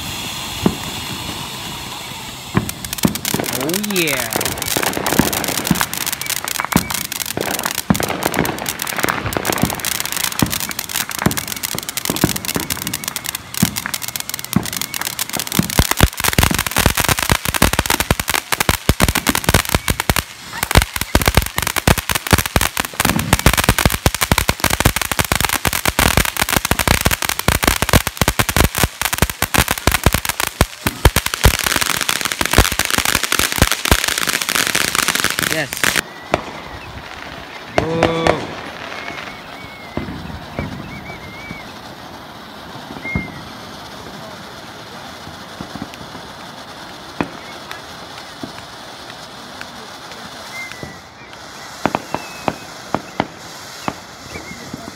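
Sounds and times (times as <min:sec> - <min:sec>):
firework crackling and hissing: 0:00.0 - 0:54.9.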